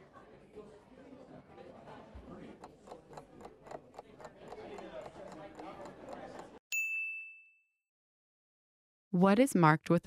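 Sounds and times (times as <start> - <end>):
timer bell ding: 6.7 - 7.8.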